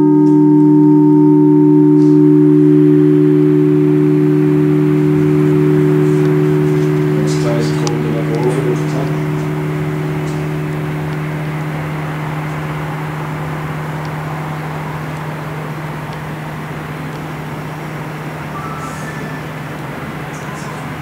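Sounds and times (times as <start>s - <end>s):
church bells humming: 0.0s - 21.0s.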